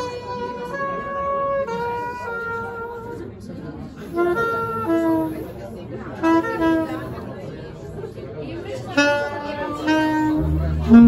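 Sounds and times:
audience chattering: 0:00.0 - 0:11.0.

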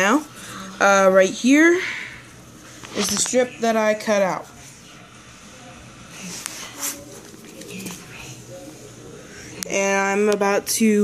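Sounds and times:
faint voices: 0:01.5 - 0:10.9.

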